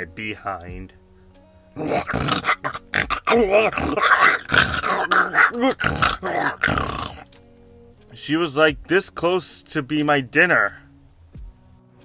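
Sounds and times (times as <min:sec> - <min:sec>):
background music: 0:00.0 - 0:12.0
person growling and grunting: 0:01.8 - 0:07.2.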